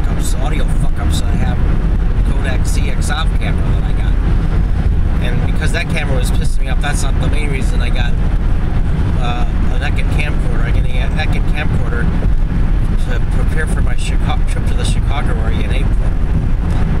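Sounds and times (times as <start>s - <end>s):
person talking: 0.0s - 4.2s, 5.2s - 8.2s, 9.1s - 12.1s, 12.9s - 16.0s
car road and engine rumble: 0.0s - 17.0s.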